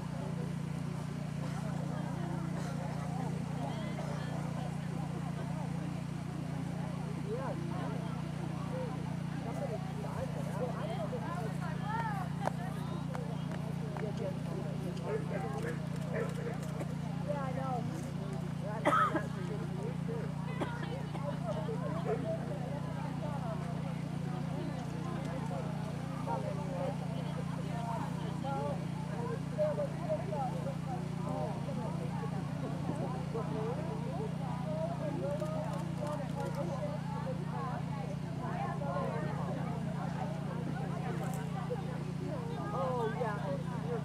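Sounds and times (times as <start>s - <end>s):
people talking: 0.0s - 44.0s.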